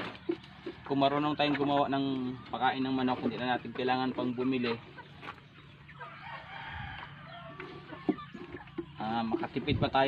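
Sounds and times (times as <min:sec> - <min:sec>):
rooster crowing: 0:06.0 - 0:07.8.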